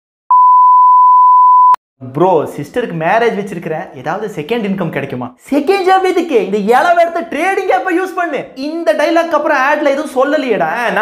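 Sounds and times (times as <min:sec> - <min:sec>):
steady electronic beep: 0:00.3 - 0:01.8.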